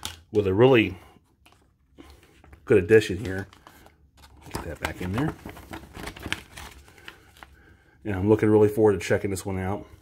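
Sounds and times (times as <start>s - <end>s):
plastic case and paper clicks: 2.4s - 7.5s.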